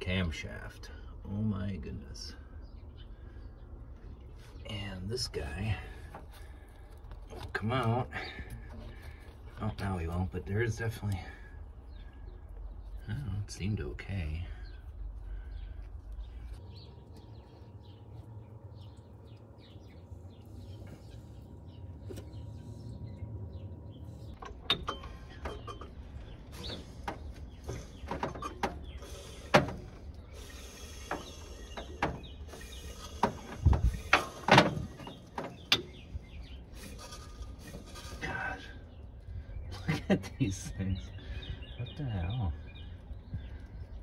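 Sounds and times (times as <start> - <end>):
low rumble: 11.1 - 27.6.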